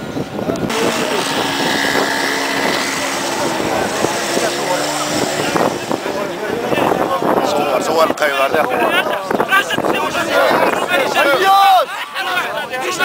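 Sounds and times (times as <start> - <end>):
crowd of men talking and shouting: 0.3 - 13.0.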